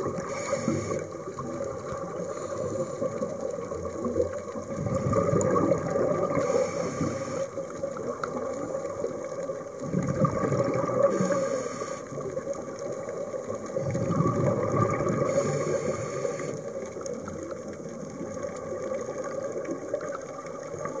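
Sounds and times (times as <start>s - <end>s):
regulator inhalation hiss: 0.2s - 1.2s, 2.3s - 3.2s, 6.3s - 7.6s, 11.0s - 12.2s, 15.2s - 16.7s
exhalation bubbling: 4.7s - 6.4s, 9.8s - 11.3s, 13.7s - 15.7s.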